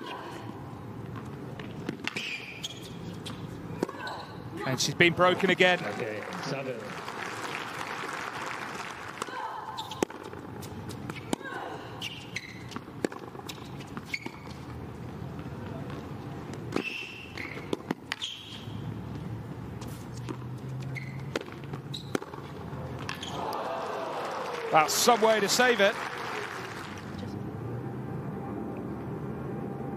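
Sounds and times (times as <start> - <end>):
tennis ball bouncing and struck: 1.2 - 4.0, 12.6 - 14.8, 15.9 - 18.8, 19.8 - 23.4.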